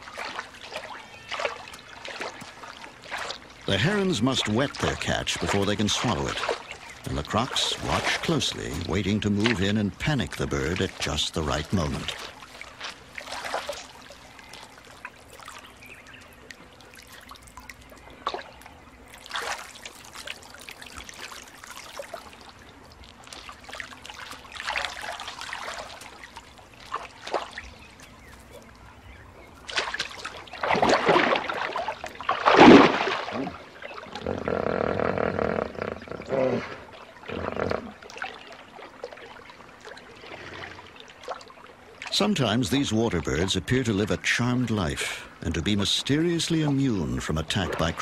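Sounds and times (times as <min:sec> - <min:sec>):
water splashing in a pool: 0:00.0 - 0:48.0.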